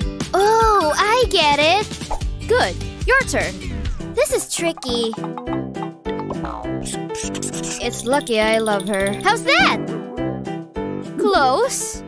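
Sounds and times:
cheerful background music: 0.0s - 12.0s
scratchy rubbing noise: 7.2s - 8.1s.

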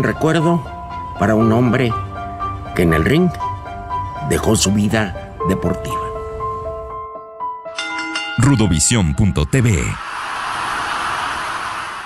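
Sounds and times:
steady rushing noise: 9.8s - 12.0s.

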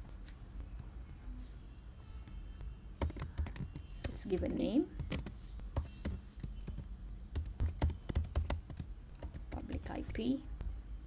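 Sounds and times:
computer keyboard typing: 3.0s - 9.9s.

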